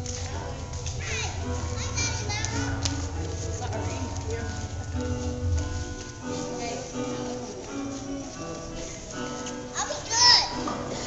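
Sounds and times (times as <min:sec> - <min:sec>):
music with low bass: 0:00.0 - 0:09.8
young children chattering: 0:00.0 - 0:11.0.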